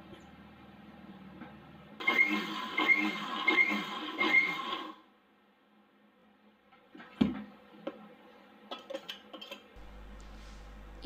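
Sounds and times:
mixer grinder grinding seeds: 0:02.0 - 0:05.0.

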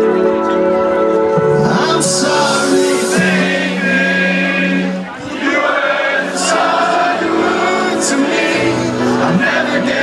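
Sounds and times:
live music over sound system: 0:00.0 - 0:10.0
long held sung vocals: 0:01.6 - 0:10.0
high hissing sweep: 0:02.3 - 0:04.6.

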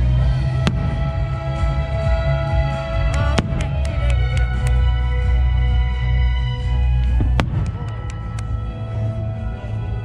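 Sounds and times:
steady music: 0:00.0 - 0:10.0
faint firework cracks: 0:07.3 - 0:08.5.

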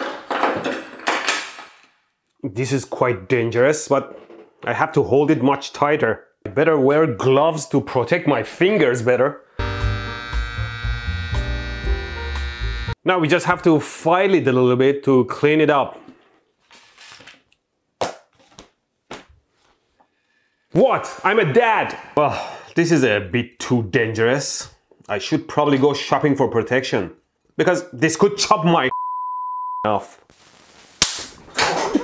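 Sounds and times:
loud electrical crack: 0:30.3 - 0:31.5.

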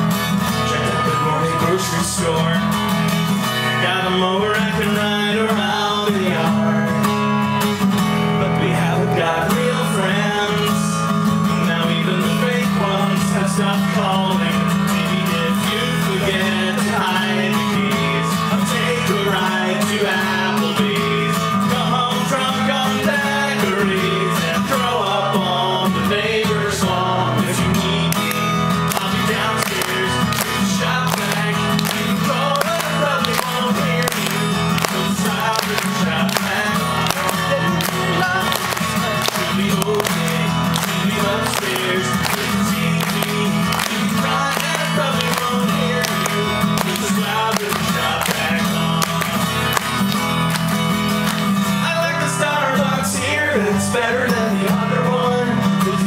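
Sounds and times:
man singing into a microphone: 0:00.0 - 0:50.1, 0:51.3 - 0:56.0
acoustic guitar strumming: 0:00.0 - 0:56.0.

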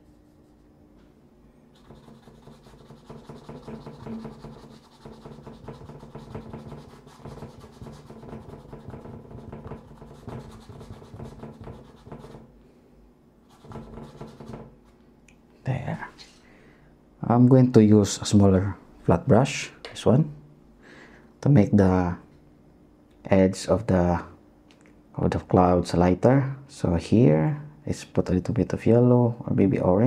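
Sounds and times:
paintbrush strokes on canvas: 0:01.8 - 0:09.0, 0:09.7 - 0:12.4.

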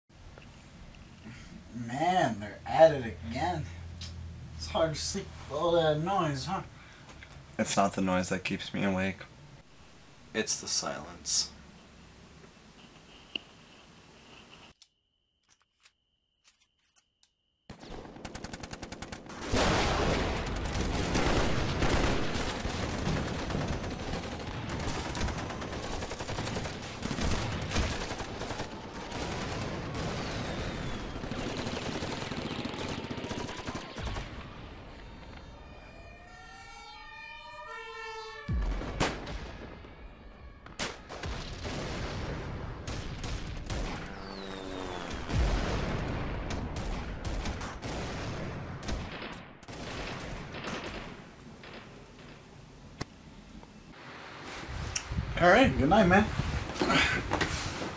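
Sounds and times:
machine-gun and rifle fire: 0:17.7 - 0:34.6, 0:40.8 - 0:51.9.

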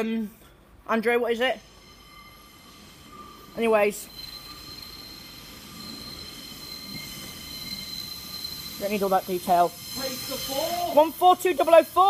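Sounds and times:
train low rumble: 0:00.0 - 0:12.0
high-pitched whine: 0:01.2 - 0:12.0.

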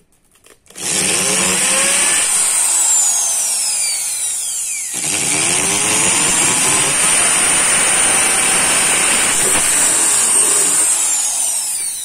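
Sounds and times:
power drill drilling sheet metal: 0:00.7 - 0:12.0.

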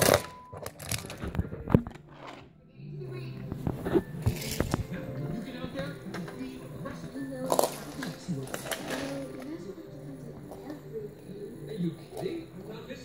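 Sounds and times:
music: 0:00.0 - 0:13.0
indistinct voices: 0:02.2 - 0:13.0.

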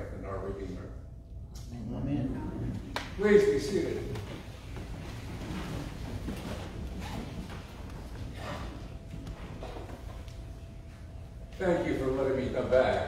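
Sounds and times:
faint rustling: 0:04.0 - 0:11.8.

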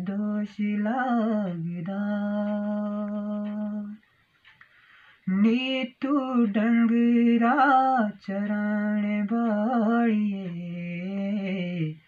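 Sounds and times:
man singing unaccompanied: 0:00.0 - 0:04.1, 0:05.2 - 0:12.0.

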